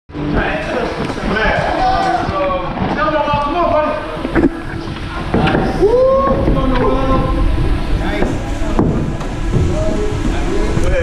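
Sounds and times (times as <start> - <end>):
chatter of many voices: 0.1 - 11.0.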